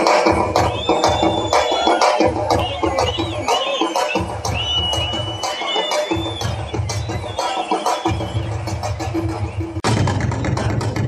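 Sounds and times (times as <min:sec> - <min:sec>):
drum kit and cymbals: 0:00.0 - 0:11.0
low bass: 0:08.2 - 0:11.0.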